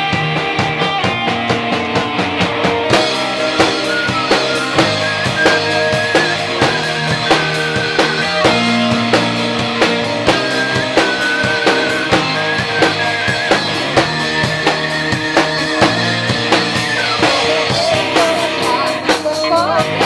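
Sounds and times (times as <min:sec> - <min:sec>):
live band with drum beat: 0:00.0 - 0:20.0
pan flute melody: 0:02.9 - 0:20.0.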